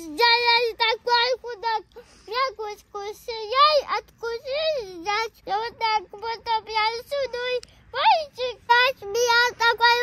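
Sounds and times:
young child talking sing-song: 0.0s - 10.0s.

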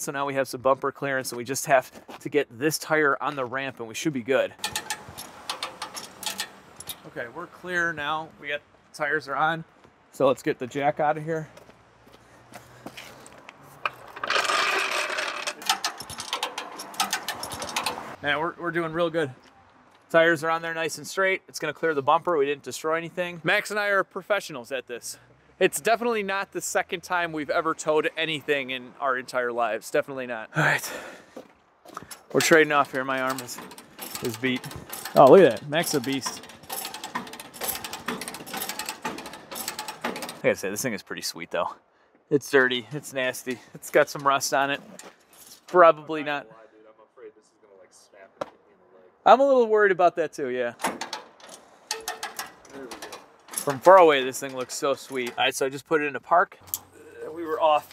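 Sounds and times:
metal clicks and clanks: 4.5s - 7.2s, 13.8s - 18.2s, 31.9s - 40.5s, 43.4s - 45.8s, 50.8s - 55.5s
floor jack scraping on asphalt: 12.6s - 18.2s.

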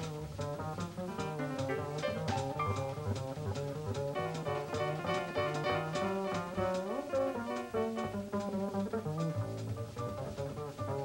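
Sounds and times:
plucked double bass: 0.0s - 11.0s
small-group jazz: 0.0s - 11.0s.

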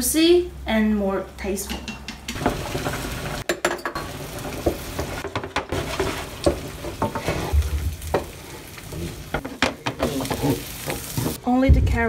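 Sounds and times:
eggs sizzling in frying pan: 2.1s - 11.4s
spatula scraping pan: 2.4s - 11.4s.

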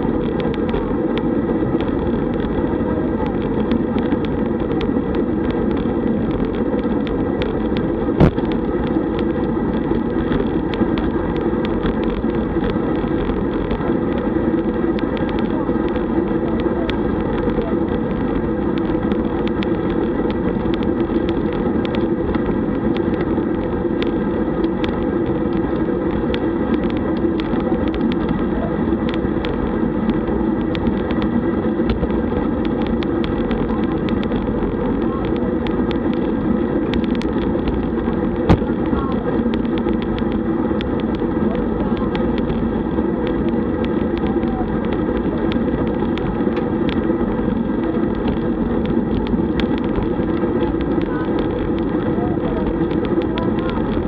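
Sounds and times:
bike clicks and rattles: 0.0s - 54.0s
road and wind noise: 0.0s - 54.0s.

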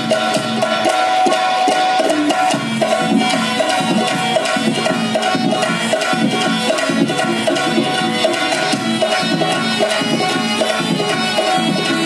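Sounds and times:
hand drums beating: 0.0s - 12.0s
held melody line: 0.0s - 12.0s.

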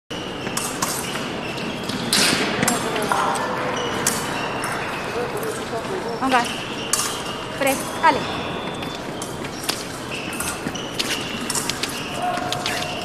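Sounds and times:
distant indistinct voices: 1.3s - 10.4s.

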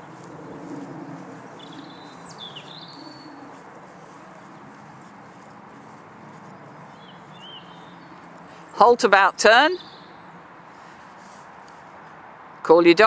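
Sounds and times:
bird chirps: 0.0s - 9.0s, 9.7s - 10.3s.

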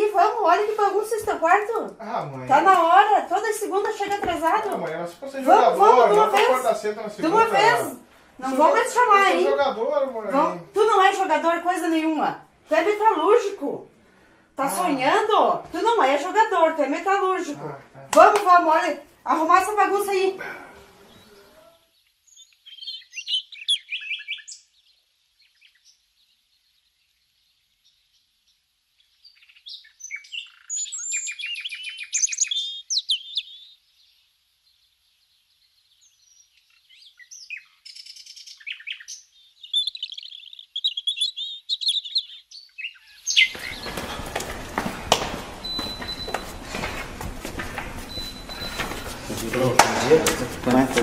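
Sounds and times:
small birds chirping: 20.8s - 51.0s
broad noisy din with knocks: 43.6s - 51.0s.

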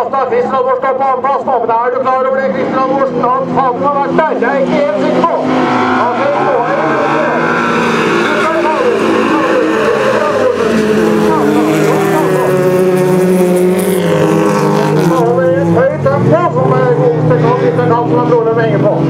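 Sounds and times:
loudspeaker commentary: 0.0s - 13.2s, 13.8s - 19.0s
race car engines at high revs: 0.0s - 19.0s.

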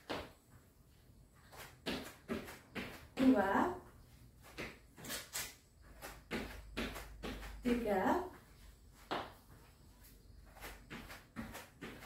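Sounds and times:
feet thudding on exercise mat: 0.0s - 12.0s.

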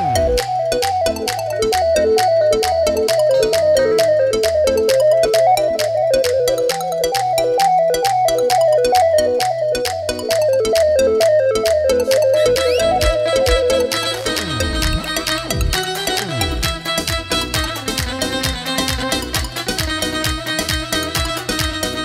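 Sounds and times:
stepping bass line: 0.0s - 6.6s, 9.0s - 21.8s
keyboard melody: 0.0s - 22.0s
quick steady drum beat: 14.6s - 17.7s.

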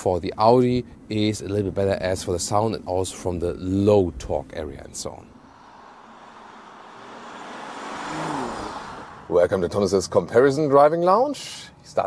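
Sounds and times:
car engine approaching: 5.3s - 10.5s.

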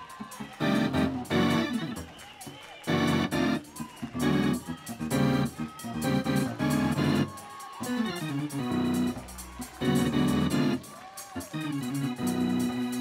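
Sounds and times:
electric organ playing: 0.0s - 13.0s.

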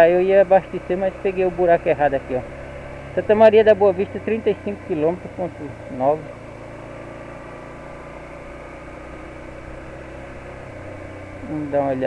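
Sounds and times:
motorcycle engine running: 0.0s - 12.0s
road noise: 0.0s - 12.0s.

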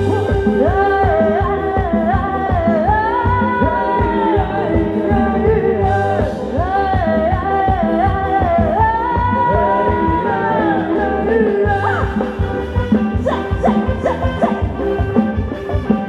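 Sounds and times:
steady drum beat: 0.0s - 10.8s.

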